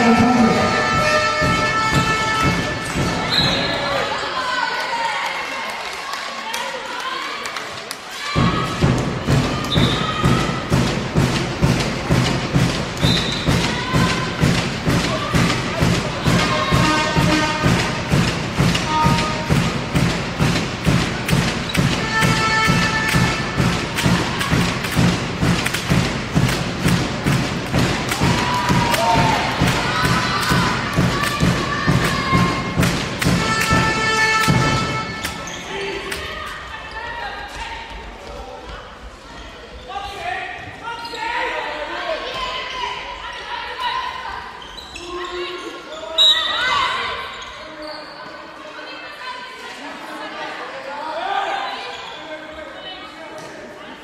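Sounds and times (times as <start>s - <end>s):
steady drum beat: 0.0s - 3.3s, 8.4s - 35.4s
crowd shouts: 0.0s - 10.9s, 26.8s - 37.6s.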